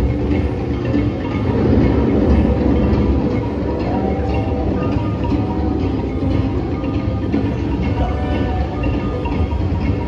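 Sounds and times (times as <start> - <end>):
faint ride music: 0.0 - 10.0.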